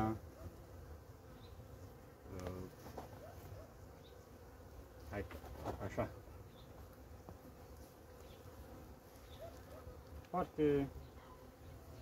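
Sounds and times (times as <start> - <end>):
honeybees humming: 0.0 - 12.0.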